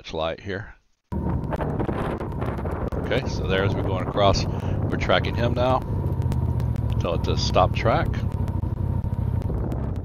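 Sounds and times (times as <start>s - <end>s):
vehicle engine rumbling: 1.1s - 10.0s
wind buffeting microphone: 1.1s - 10.0s.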